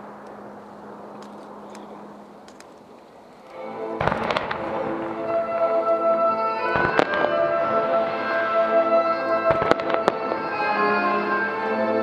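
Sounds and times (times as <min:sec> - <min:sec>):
music for fireworks display: 0:03.4 - 0:12.0
fireworks bangs: 0:03.9 - 0:10.9.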